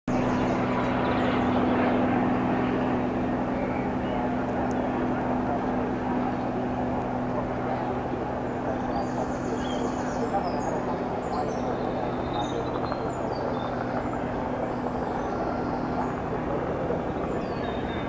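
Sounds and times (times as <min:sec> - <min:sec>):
propeller aircraft engines droning: 0:00.1 - 0:18.0.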